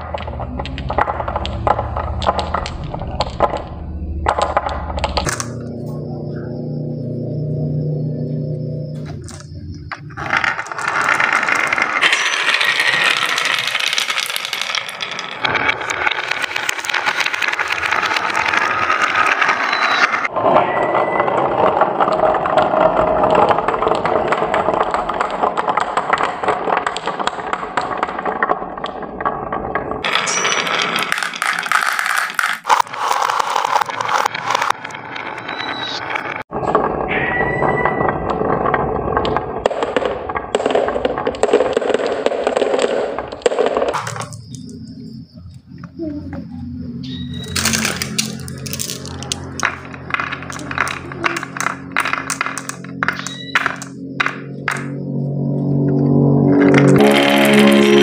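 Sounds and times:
marbles clattering on wooden track: 0.0 - 5.7, 8.7 - 58.0.

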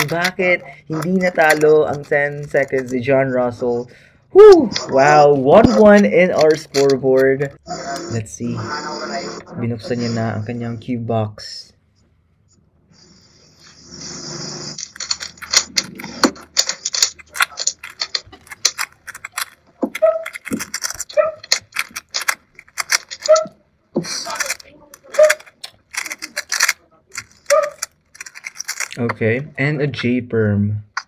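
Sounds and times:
plastic cube clicking and clacking: 0.0 - 3.1, 5.6 - 7.4, 14.8 - 29.2.

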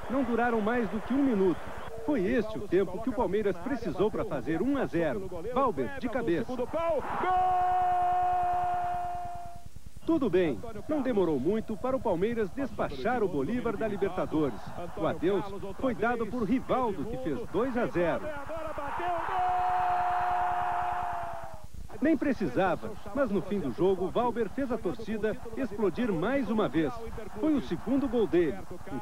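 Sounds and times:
stadium crowd cheering: 0.0 - 2.4, 6.6 - 9.6, 13.4 - 21.6, 23.2 - 29.0.

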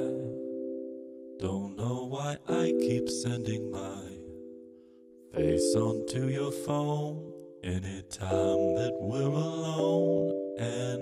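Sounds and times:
man singing: 0.0 - 0.4, 1.4 - 4.4, 5.4 - 11.0
keyboard chord: 0.0 - 11.0.

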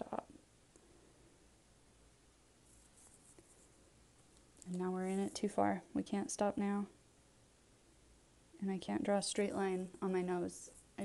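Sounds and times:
eyeliner pen strokes on skin: 2.6 - 5.5.

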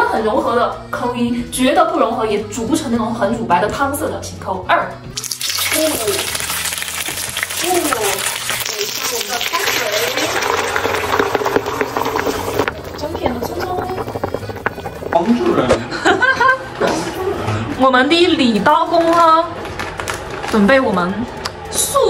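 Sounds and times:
fish sizzling in hot oil: 5.2 - 15.3
water being poured: 5.2 - 15.8.

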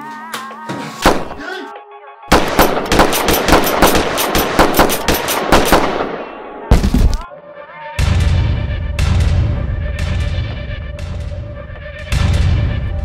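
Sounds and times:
rapid gunfire: 2.3 - 6.3.

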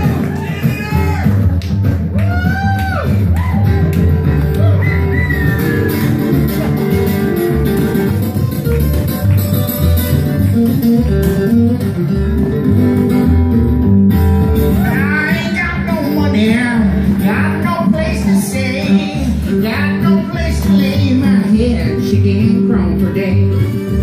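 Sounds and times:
picked acoustic guitars: 0.0 - 24.0
upright bass walking line: 0.0 - 24.0.

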